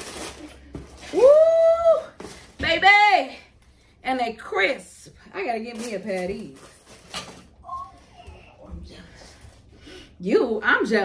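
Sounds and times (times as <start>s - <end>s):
woman exclaiming woo: 1.1s - 2.1s.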